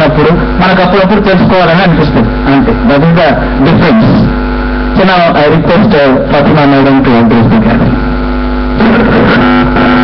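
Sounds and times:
electrical buzz with mains hum: 0.0s - 10.0s.

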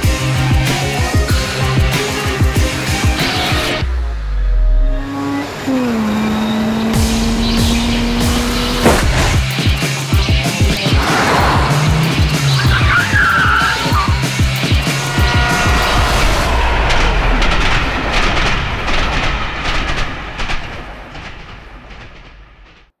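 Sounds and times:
train rumbling: 5.4s - 22.9s
trailer music with pulsing beat: 7.0s - 20.5s
high screech: 10.8s - 17.9s
train wheels clicking over rails: 16.9s - 22.9s.

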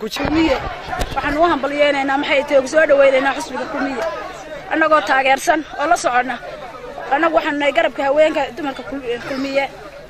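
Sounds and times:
woman speaking: 0.0s - 6.4s, 7.0s - 9.8s.

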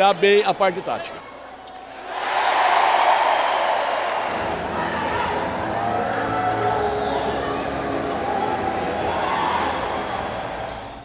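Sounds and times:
crowd cheering: 1.3s - 11.0s.

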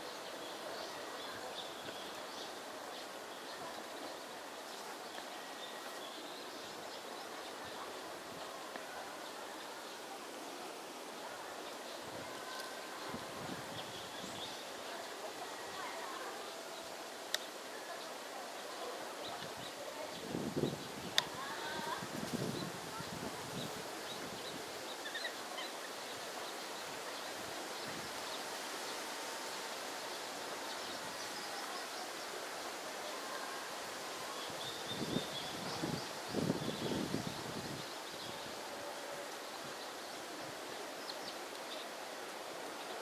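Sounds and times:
outdoor background hiss: 0.0s - 43.0s.

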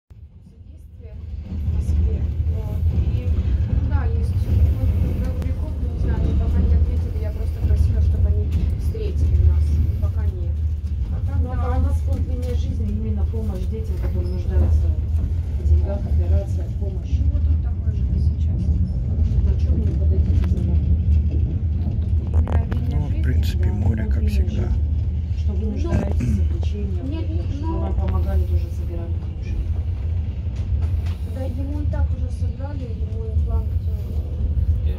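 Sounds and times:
train rumbling along track: 0.2s - 34.9s.

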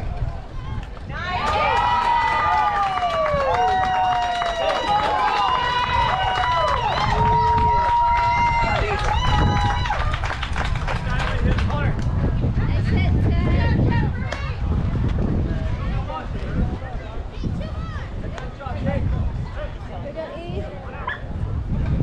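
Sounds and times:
wind rumble on microphone: 0.0s - 22.0s
children yelling and cheering: 0.6s - 10.3s.

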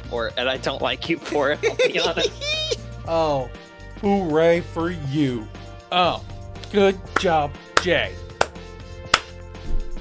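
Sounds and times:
background music: 0.0s - 10.0s
hand claps: 7.1s - 9.4s.

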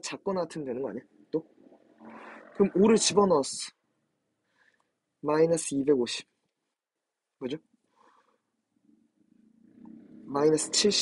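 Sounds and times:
man speaking: 0.0s - 1.5s, 2.2s - 3.8s, 5.2s - 6.4s, 7.4s - 7.6s, 10.3s - 11.0s.

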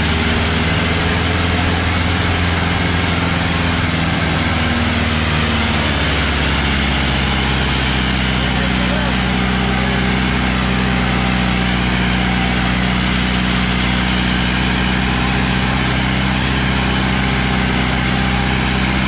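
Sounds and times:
tractor diesel engine running: 0.0s - 19.0s.

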